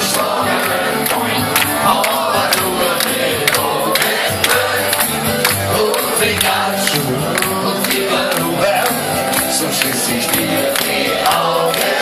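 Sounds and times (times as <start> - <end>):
crowd clapping along: 0.0 - 12.0
live band music through speakers: 0.0 - 12.0.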